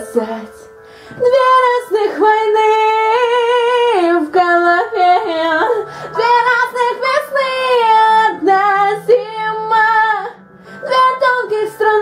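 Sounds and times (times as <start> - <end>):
quiet piano backing track: 0.0 - 12.0
woman singing rock ballad: 0.0 - 12.0.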